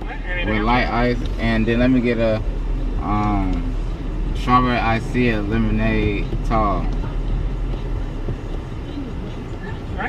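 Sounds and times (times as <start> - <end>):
car idling: 0.0 - 10.0.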